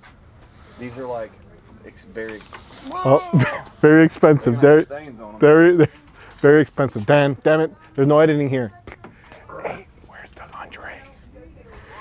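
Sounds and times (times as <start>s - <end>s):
faint voices talking: 2.8s - 12.0s.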